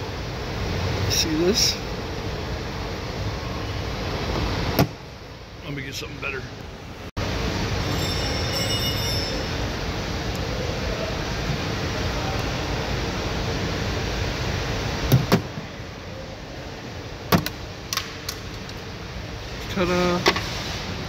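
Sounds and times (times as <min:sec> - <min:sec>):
steady background noise: 0:00.0 - 0:21.0.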